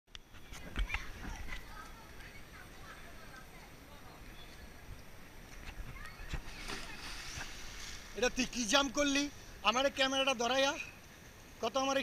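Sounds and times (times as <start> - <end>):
faint distant voices: 0.3 - 11.0.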